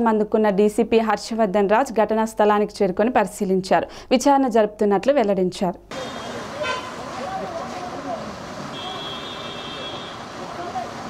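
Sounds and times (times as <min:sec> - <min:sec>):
steady street hiss: 0:05.9 - 0:11.0
short horn toot: 0:06.0 - 0:07.0, 0:08.7 - 0:10.2.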